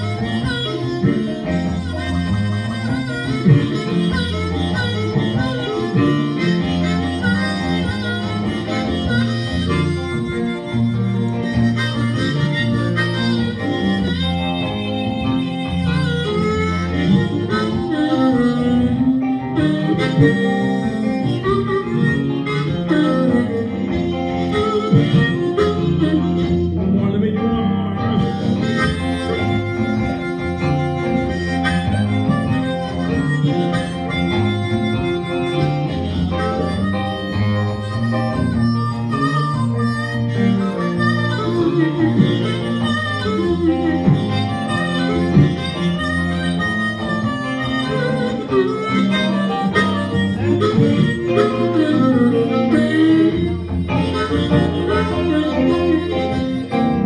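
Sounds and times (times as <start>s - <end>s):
blues harmonica wailing: 0.0s - 57.0s
electric guitar comping: 0.0s - 57.0s.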